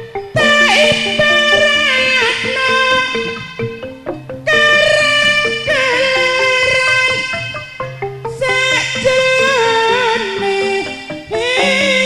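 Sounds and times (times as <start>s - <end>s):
metallic gamelan notes: 0.0s - 12.0s
woman singing through pa: 0.2s - 3.9s, 4.5s - 12.0s.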